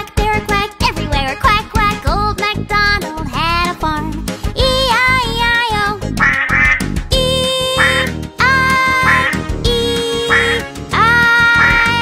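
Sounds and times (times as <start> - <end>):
children's song music: 0.0 - 12.0
duck quacks: 6.2 - 6.8, 7.8 - 8.1, 9.0 - 9.4, 10.3 - 10.6.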